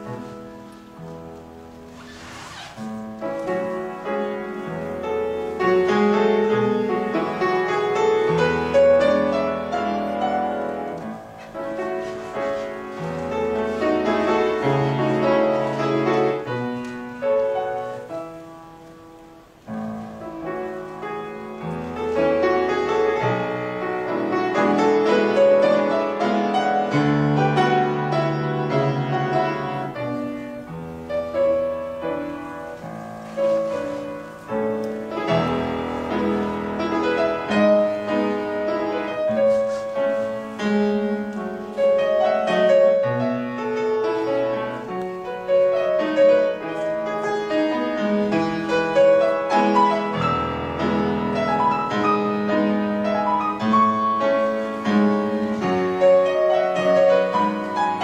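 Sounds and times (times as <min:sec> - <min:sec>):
solo piano music: 0:00.0 - 0:58.0.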